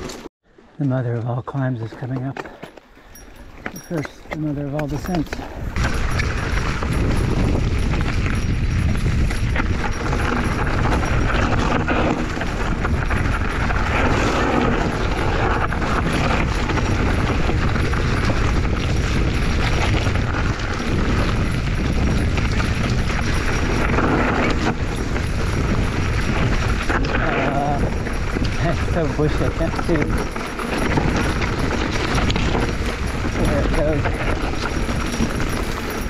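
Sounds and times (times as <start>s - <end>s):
bike and bags rattling: 0.0s - 0.3s, 1.7s - 36.0s
tyres crunching over dirt and stones: 0.0s - 36.0s
wind rumble on microphone: 3.2s - 36.0s.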